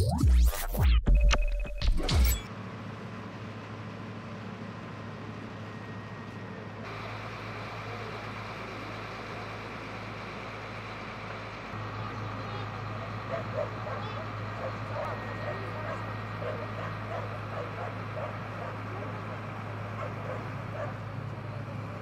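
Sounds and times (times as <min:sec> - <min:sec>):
fire engines humming: 0:02.5 - 0:22.0
indistinct voices: 0:11.4 - 0:22.0.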